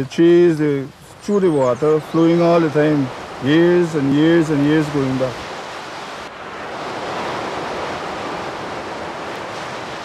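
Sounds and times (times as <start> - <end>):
sea surf washing ashore: 0.0 - 10.0.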